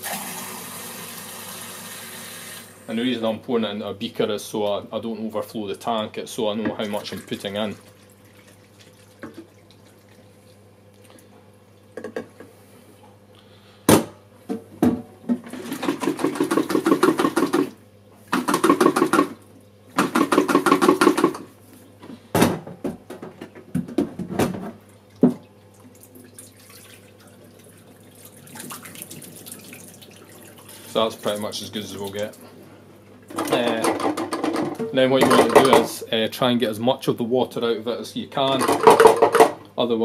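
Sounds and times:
water running into sink: 0.0 - 2.8, 25.1 - 32.4
water sloshing in plastic tank: 6.6 - 11.3, 23.8 - 32.5.

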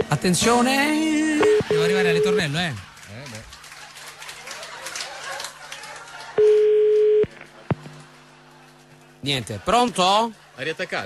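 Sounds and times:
telephone ringback beep: 1.4 - 2.4, 6.4 - 7.3.

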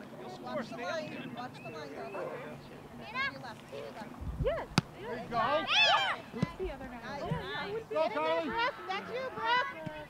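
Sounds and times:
high-pitched shouts: 5.6 - 6.2
soccer ball kick thump: 6.4 - 7.4.

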